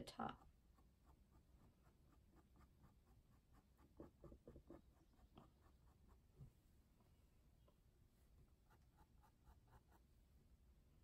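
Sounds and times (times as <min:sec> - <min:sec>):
paintbrush strokes on canvas: 0:08.0 - 0:10.4.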